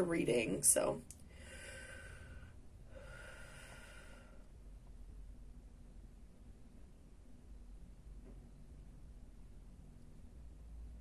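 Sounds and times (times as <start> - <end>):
faint human breathing: 1.2 - 4.8.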